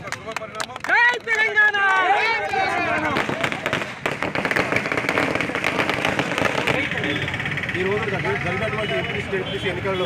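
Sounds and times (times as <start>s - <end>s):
firecrackers cracking: 2.8s - 7.1s.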